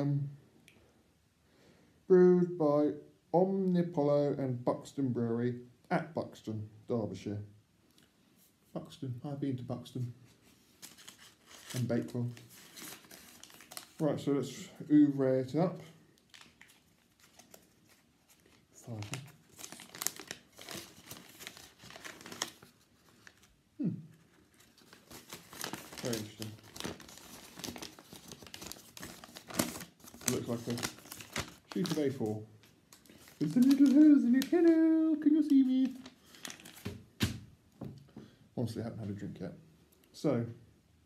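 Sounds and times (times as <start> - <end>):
paper wrapping crinkling: 10.3 - 14.7, 16.0 - 23.6, 24.2 - 37.4.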